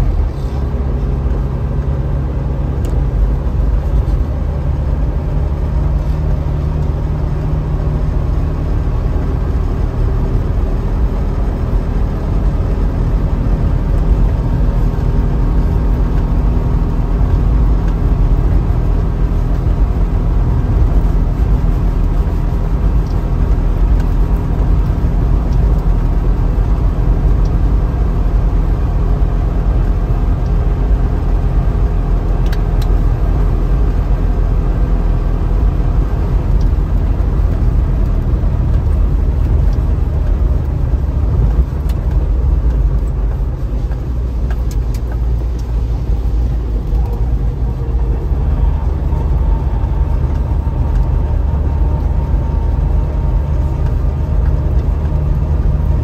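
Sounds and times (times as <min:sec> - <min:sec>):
tyre noise on wet road: 0:00.0 - 0:56.0.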